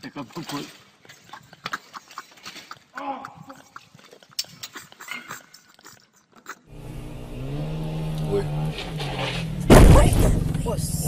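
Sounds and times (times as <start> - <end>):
man exclaiming: 3.0 - 3.6
car engine and road noise: 6.7 - 11.0.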